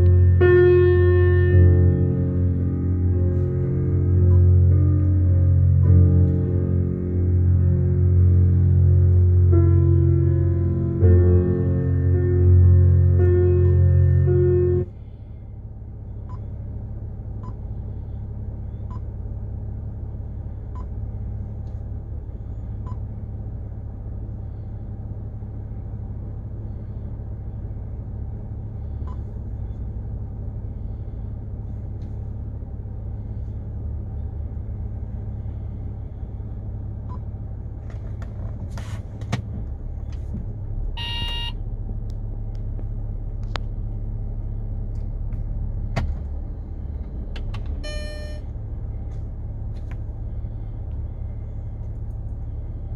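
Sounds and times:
car idling low rumble: 0.0s - 52.9s
short electronic beep: 41.0s - 41.6s, 47.8s - 48.4s.

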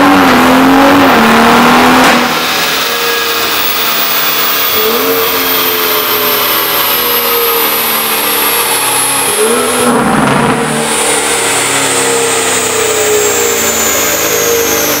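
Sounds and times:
car engine running steadily: 0.0s - 15.0s
engine rev surge: 0.0s - 15.0s.

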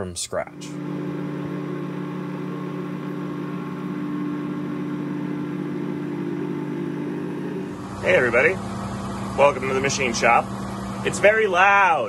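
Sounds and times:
milling machine cutting metal: 0.7s - 11.9s.

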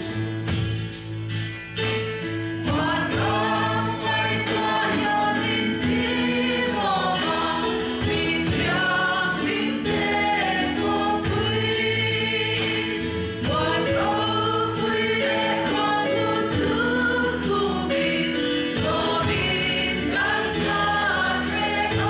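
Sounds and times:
congregation singing a hymn: 2.6s - 22.0s.

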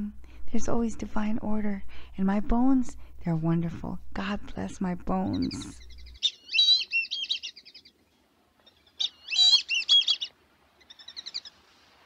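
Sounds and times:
songbird singing: 5.0s - 11.6s.

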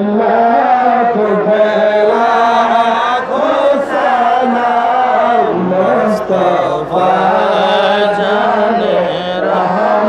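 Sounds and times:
man chanting devotional song: 0.0s - 10.0s.

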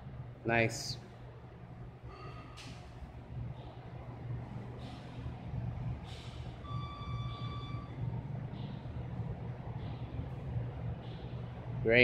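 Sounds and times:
high electronic beep: 6.6s - 8.0s.

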